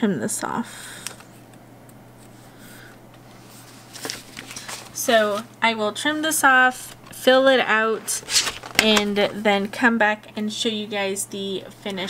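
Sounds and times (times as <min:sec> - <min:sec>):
steady low hum: 0:00.0 - 0:12.0
paper rustling: 0:03.3 - 0:05.5, 0:08.0 - 0:09.3.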